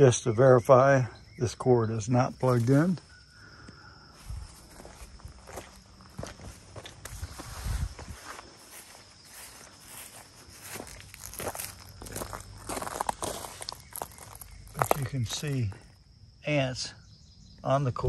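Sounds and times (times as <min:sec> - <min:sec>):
footsteps on gravel: 0:03.6 - 0:15.9.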